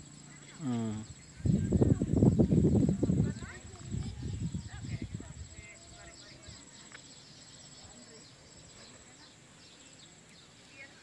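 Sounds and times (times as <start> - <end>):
faint distant voices: 0.0 - 11.0
high insect chirping: 0.0 - 11.0
wind rumbling on microphone: 1.0 - 6.9.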